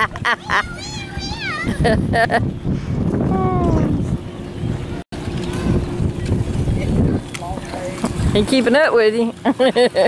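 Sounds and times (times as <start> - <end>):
wind buffeting microphone: 0.0 - 9.4.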